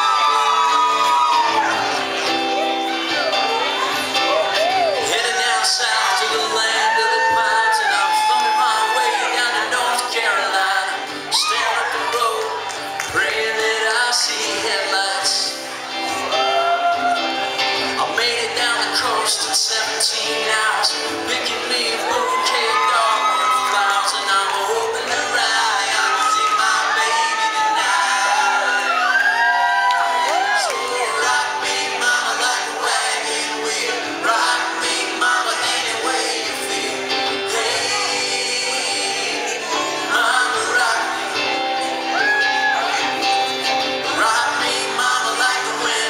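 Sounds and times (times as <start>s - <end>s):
sliding whoops: 0.0s - 1.8s, 25.9s - 31.4s
electric guitar: 0.0s - 46.0s
men singing in harmony: 5.0s - 16.6s, 17.4s - 29.3s, 30.0s - 42.2s, 42.8s - 46.0s.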